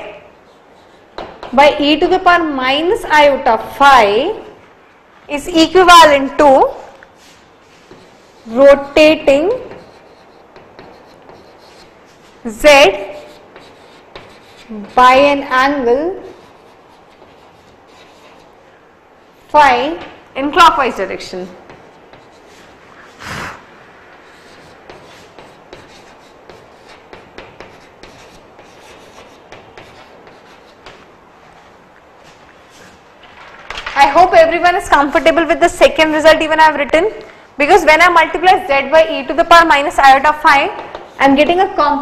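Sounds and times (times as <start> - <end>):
chalk scratching on blackboard: 0.4 - 1.3, 7.2 - 18.6, 19.3 - 33.0
chalk tapping on blackboard: 0.5 - 1.6, 7.8 - 18.6, 19.6 - 23.2, 24.1 - 32.9, 40.5 - 41.6.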